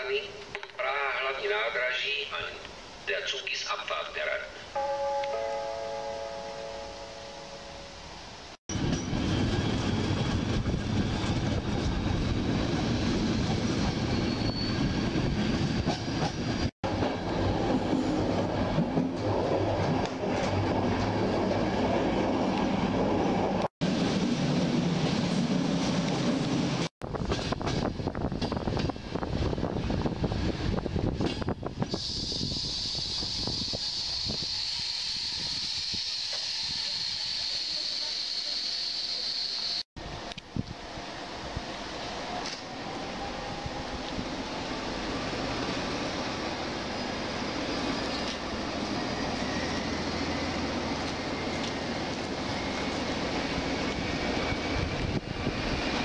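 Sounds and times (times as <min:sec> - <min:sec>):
train wheels rumbling and clattering: 0:08.7 - 0:34.6, 0:41.5 - 0:56.0.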